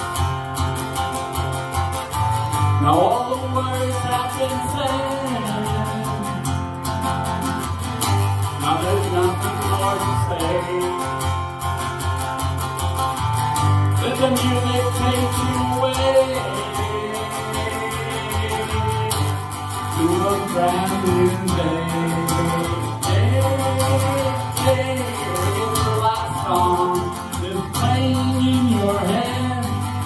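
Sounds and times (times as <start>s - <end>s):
acoustic guitar strumming: 0.0s - 30.0s
man singing: 2.8s - 7.6s, 8.4s - 11.4s, 13.9s - 30.0s.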